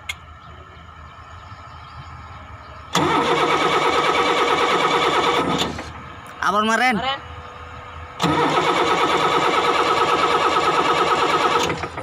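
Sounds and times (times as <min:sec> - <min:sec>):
starter motor cranking diesel engine: 0:02.9 - 0:06.0, 0:08.2 - 0:12.0.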